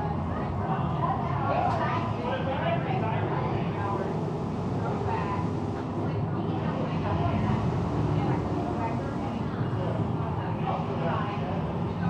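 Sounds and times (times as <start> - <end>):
low mechanical rumble: 0.0 - 12.0.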